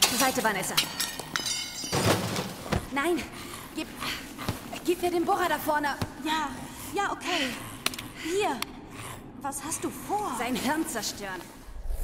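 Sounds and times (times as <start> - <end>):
clinking breaking clatter: 0.0 - 2.5.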